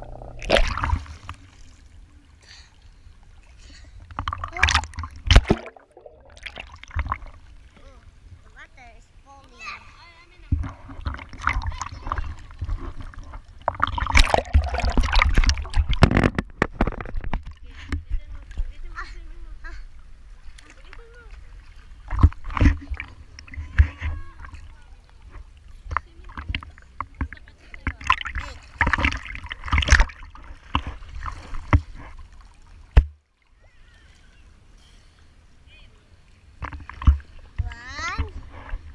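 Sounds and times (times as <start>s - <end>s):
water slaps: 0.0s - 1.8s, 4.1s - 7.4s, 10.4s - 18.8s, 20.5s - 33.2s
pool water splashing: 0.0s - 38.9s.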